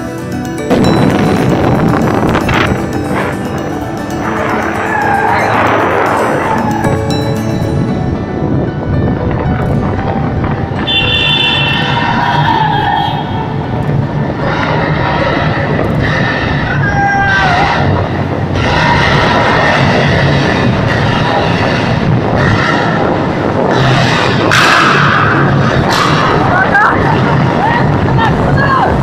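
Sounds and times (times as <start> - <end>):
vehicle road and engine noise: 0.0 - 29.0.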